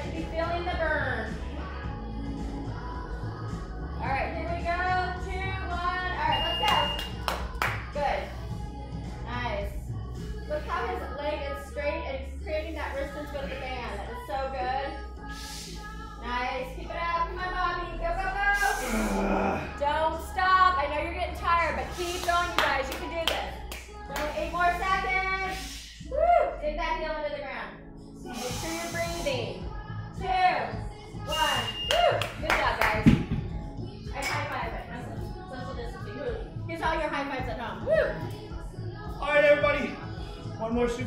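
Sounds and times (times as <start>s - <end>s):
pop music with singing: 0.0s - 41.0s
sharp hand claps: 6.6s - 7.8s.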